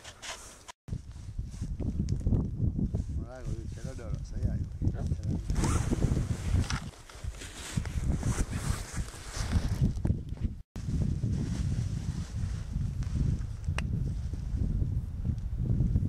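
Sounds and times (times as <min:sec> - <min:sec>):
wind rumbling on microphone: 0:00.9 - 0:16.0
clothing rustling: 0:05.6 - 0:09.9
movement in snow: 0:05.6 - 0:10.0, 0:10.8 - 0:14.7.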